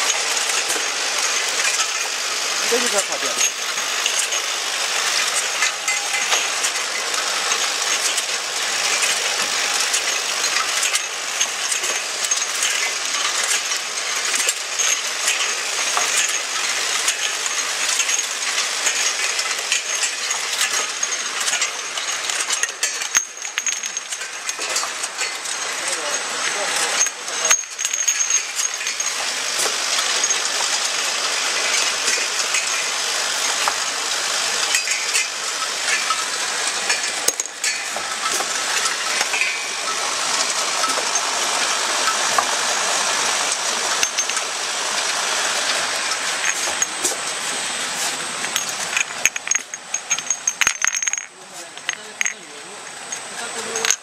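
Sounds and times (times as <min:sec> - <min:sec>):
bottles clinking: 0:00.0 - 0:54.0
filling machine clattering: 0:00.0 - 0:54.0.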